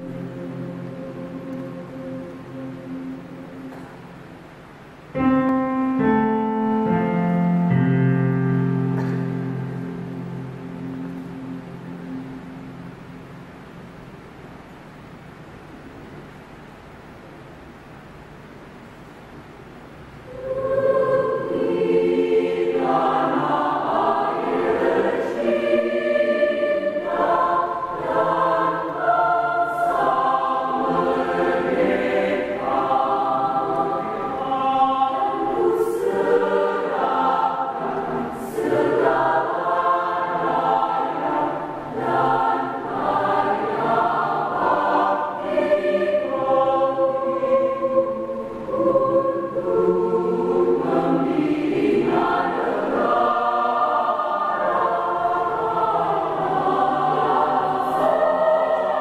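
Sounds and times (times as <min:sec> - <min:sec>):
mixed choir singing: 0:00.0 - 0:04.3, 0:06.9 - 0:14.0, 0:20.3 - 0:59.0.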